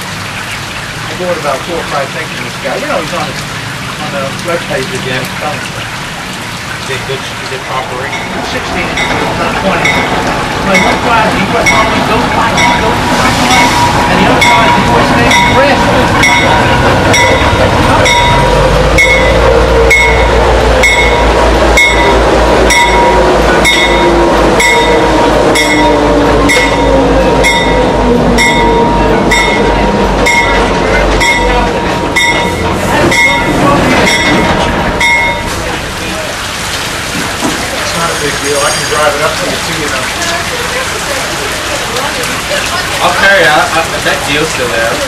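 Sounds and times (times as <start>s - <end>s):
diesel locomotive rumble: 0.0s - 45.0s
train coaches rolling by: 0.0s - 45.0s
locomotive bell ringing: 7.5s - 36.2s, 37.8s - 39.8s.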